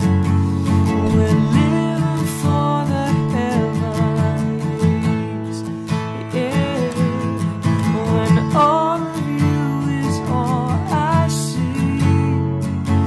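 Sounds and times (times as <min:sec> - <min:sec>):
acoustic guitar strumming: 0:00.0 - 0:13.0
man singing: 0:00.0 - 0:13.0.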